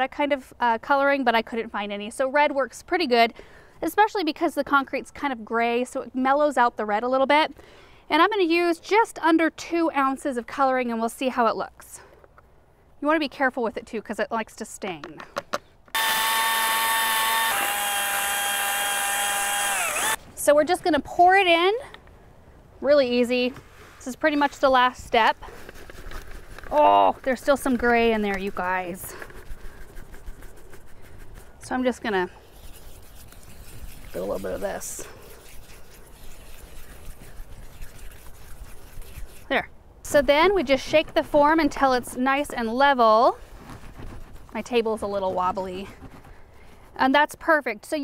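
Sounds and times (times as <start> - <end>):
cordless drill mixing concrete: 16.0 - 20.2
wet concrete scraping and squishing: 23.8 - 39.6.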